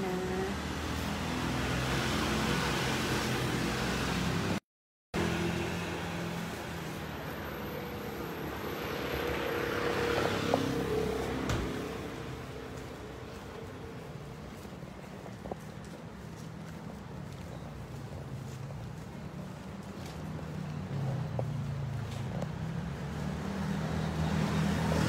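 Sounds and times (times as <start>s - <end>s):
motor vehicles passing: 0.0s - 4.6s, 5.2s - 25.0s.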